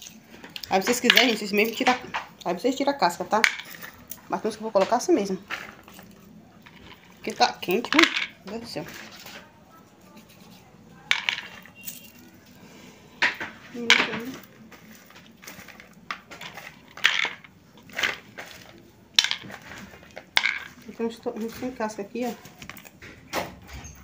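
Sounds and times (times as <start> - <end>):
peanuts rattling in plastic bowl: 0.0 - 9.4, 10.4 - 12.3, 13.7 - 22.9.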